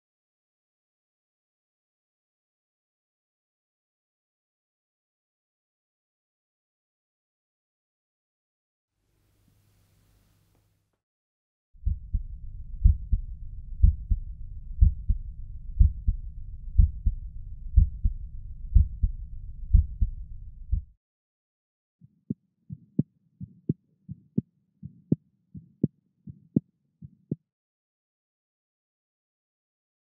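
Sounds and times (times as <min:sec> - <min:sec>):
heartbeat lub-dub: 0:11.8 - 0:20.9.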